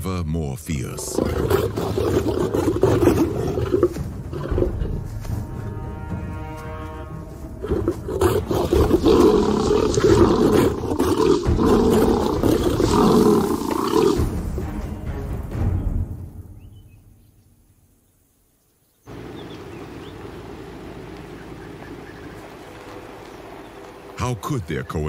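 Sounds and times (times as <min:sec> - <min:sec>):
lions roaring and snarling: 0:01.1 - 0:05.1, 0:07.6 - 0:14.6.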